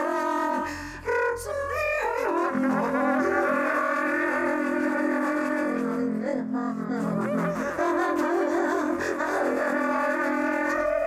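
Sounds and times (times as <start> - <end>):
woman singing wordless held tones: 0.0 - 11.0.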